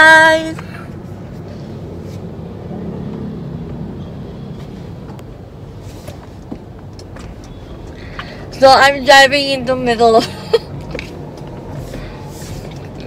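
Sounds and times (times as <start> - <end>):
road and engine rumble in car: 0.0 - 13.0.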